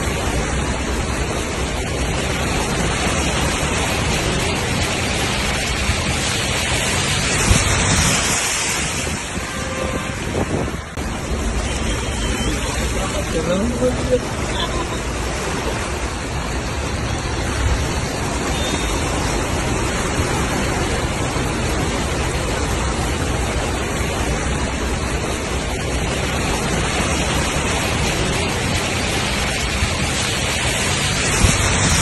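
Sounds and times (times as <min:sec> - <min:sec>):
floodwater rushing: 0:00.0 - 0:32.0.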